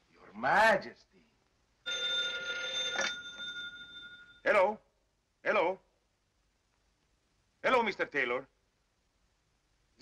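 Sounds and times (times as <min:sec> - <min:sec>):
telephone bell ringing: 0:01.8 - 0:04.5.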